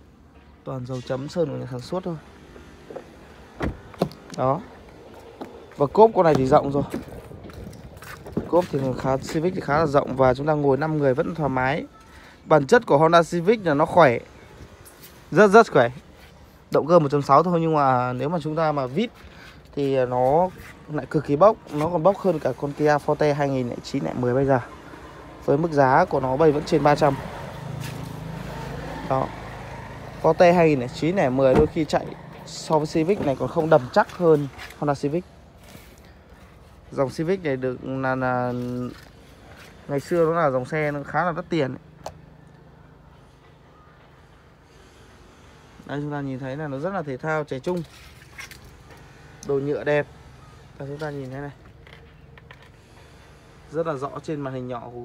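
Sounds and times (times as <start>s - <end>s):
vehicle engine humming: 1.4s - 12.2s, 12.8s - 46.8s
car door shutting: 2.6s - 4.3s, 31.5s - 32.0s.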